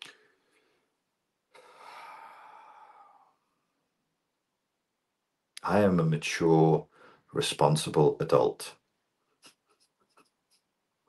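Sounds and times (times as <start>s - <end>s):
man sighing: 1.5s - 3.4s.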